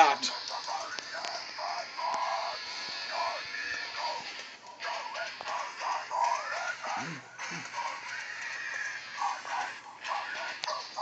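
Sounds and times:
song with sung vocals over speakers: 0.2 - 11.0.

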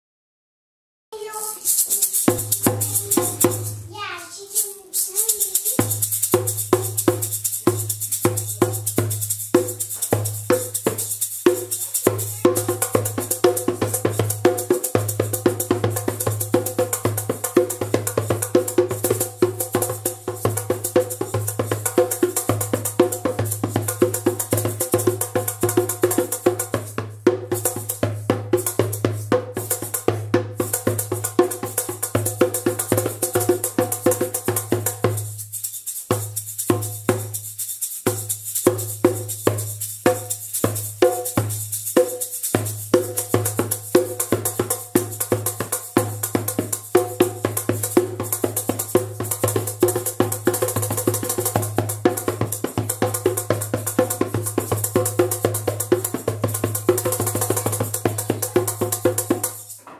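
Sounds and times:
djembe played with hands: 1.2 - 59.9
shaker rattling: 1.2 - 59.9.

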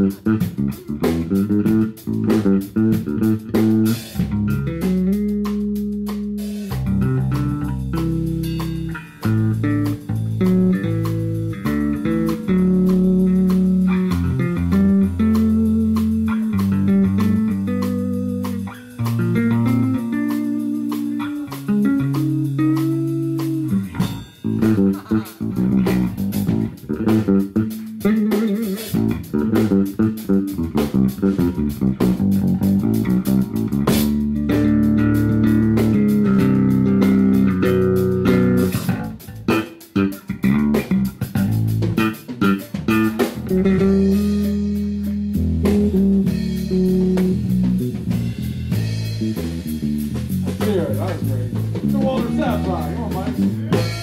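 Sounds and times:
bass guitar: 0.0 - 54.0
drum kit: 0.0 - 54.0
guitar: 0.0 - 54.0.

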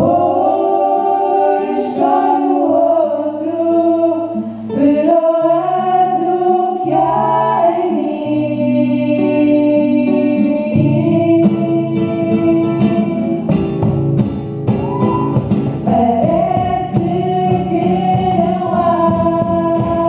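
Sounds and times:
group singing in harmony: 0.0 - 13.7, 15.8 - 20.0
acoustic guitar: 0.0 - 20.0.

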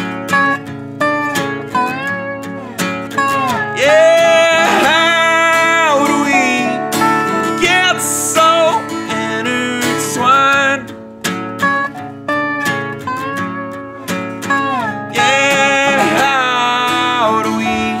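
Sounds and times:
acoustic guitar strumming: 0.0 - 18.0
lap steel guitar slide lead: 0.3 - 9.0.

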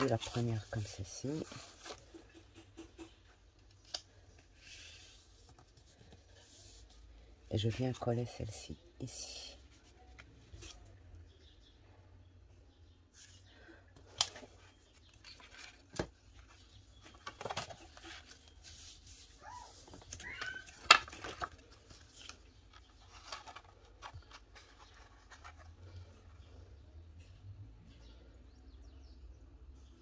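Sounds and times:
paper rustling and sliding: 14.2 - 26.4.

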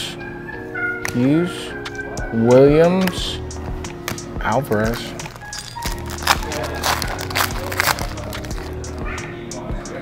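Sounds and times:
background music: 0.0 - 10.0
foil wrapper crinkling and tearing: 5.2 - 9.0.

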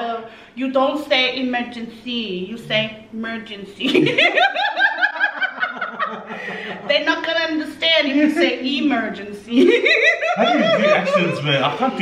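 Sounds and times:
woman and man laughing: 3.9 - 6.9, 9.6 - 11.6.

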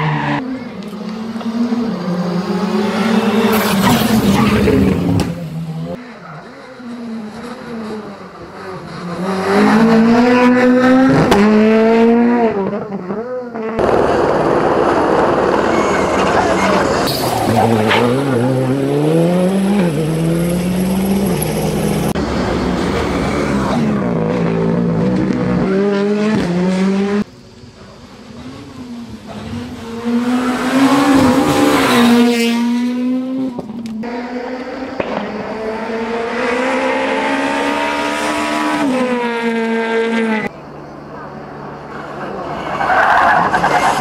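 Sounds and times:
rally car passing loudly: 0.0 - 27.3, 28.3 - 44.0
rally car engine revving: 0.0 - 44.0.

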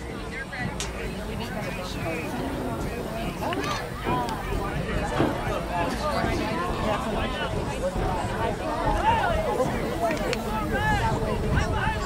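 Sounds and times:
crowd chatter and calls: 0.0 - 12.0.

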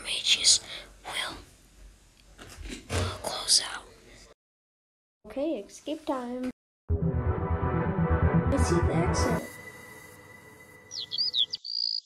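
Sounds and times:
person whispering: 0.0 - 1.4, 3.0 - 4.0.

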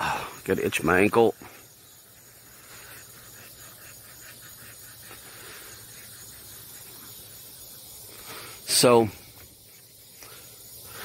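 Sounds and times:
faint rapid pulsing: 0.0 - 11.0
steady outdoor hiss: 0.0 - 11.0.

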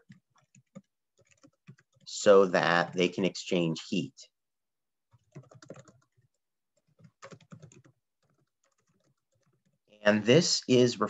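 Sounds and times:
keyboard typing: 0.0 - 2.1, 5.1 - 9.8.

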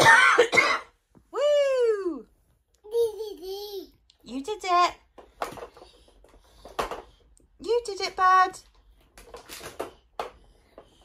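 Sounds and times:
breathy cough-like vocal burst: 0.0 - 0.9.

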